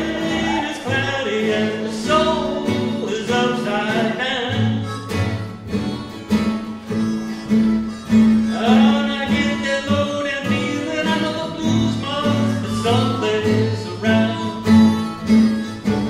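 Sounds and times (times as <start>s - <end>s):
sliding lead melody: 0.0s - 16.0s
western swing band playing blues: 0.0s - 16.0s.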